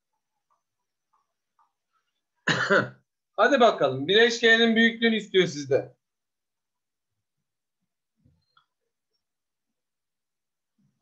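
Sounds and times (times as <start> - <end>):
man clearing throat: 2.4 - 3.0.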